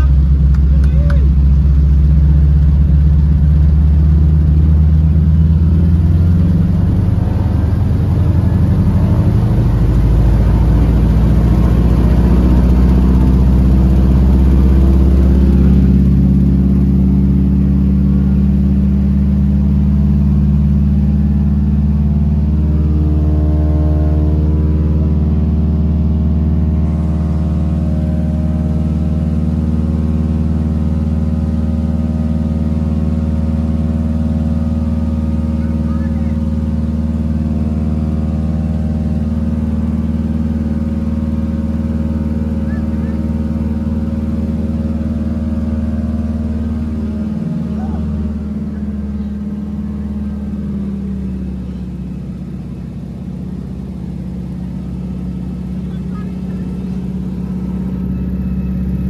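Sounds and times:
propeller plane engine drone: 0.0 - 59.0.

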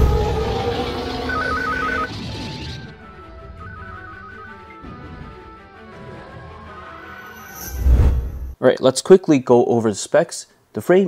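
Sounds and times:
sustained rushing noise with tones: 0.0 - 4.6
two-note electronic beeping: 1.2 - 2.1, 2.8 - 4.8.

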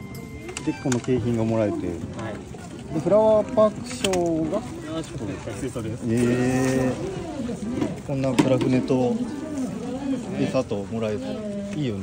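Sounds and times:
man talking: 0.6 - 7.1.

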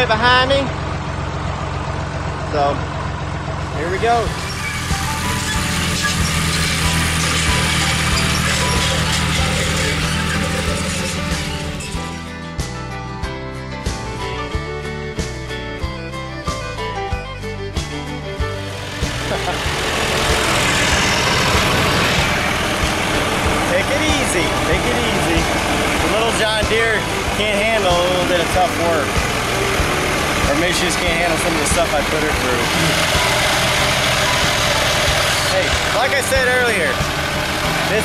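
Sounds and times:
country background music: 0.0 - 0.9, 3.6 - 38.0
tractor engine running loudly: 0.0 - 38.0.

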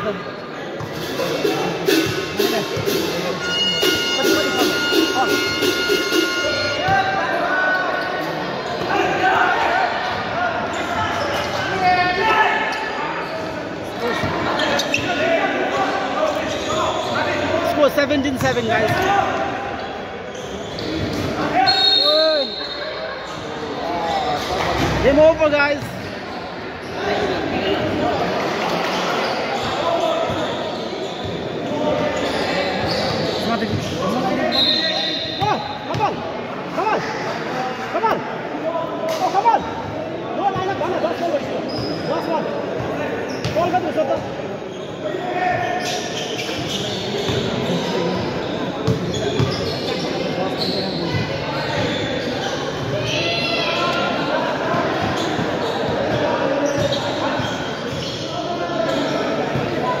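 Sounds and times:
chatter of players and spectators: 0.0 - 60.0
basketballs bouncing in a hall: 15.8 - 19.5, 27.0 - 36.3, 42.6 - 60.0.

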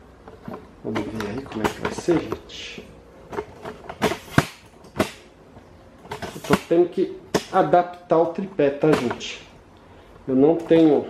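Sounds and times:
parts knocking and clicking: 0.2 - 9.4.

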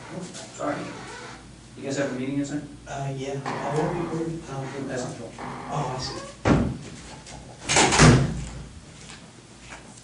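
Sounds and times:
door shutting thud: 6.4 - 6.8, 7.6 - 8.4.

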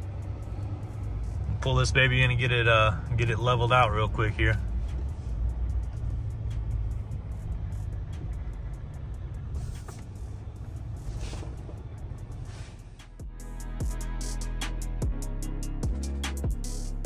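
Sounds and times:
diesel engine rumble: 0.0 - 17.0
music with drum beat: 13.0 - 17.0.

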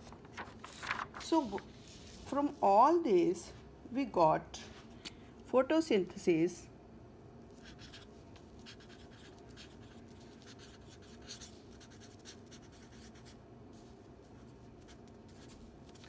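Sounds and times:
marker pen scratching on paper: 7.6 - 13.4, 14.3 - 16.0.

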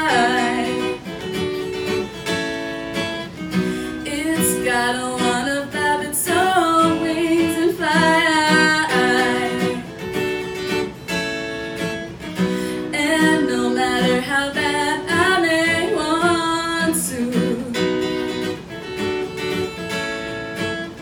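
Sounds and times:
woman singing: 0.0 - 1.5, 3.9 - 10.2, 12.7 - 18.5
strummed acoustic guitar: 0.0 - 21.0.

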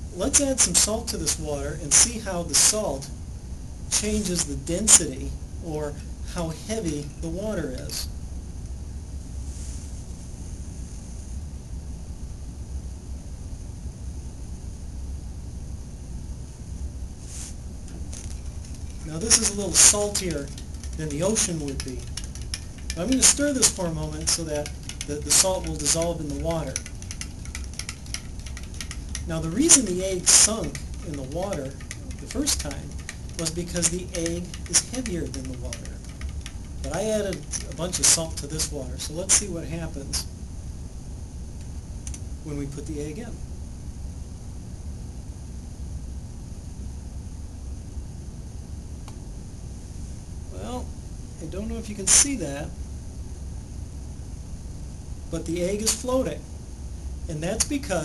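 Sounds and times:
low room hum with hiss: 0.0 - 58.0
stirrer clicking against glass: 18.2 - 38.6.

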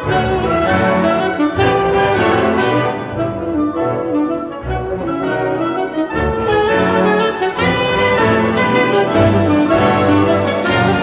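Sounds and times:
orchestra playing jazz: 0.0 - 11.0
saxophone: 0.0 - 11.0.

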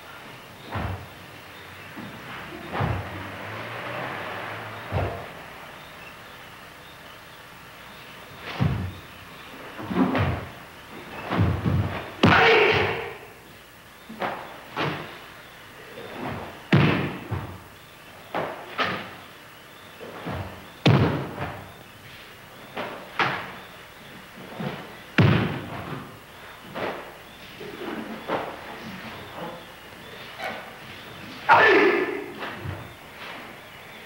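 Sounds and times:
faint soundtrack hiss: 0.0 - 34.0.

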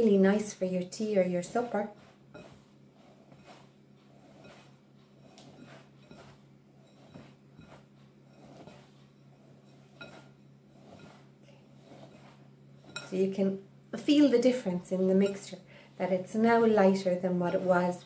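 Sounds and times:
flour being rubbed and sifted: 0.0 - 18.0.

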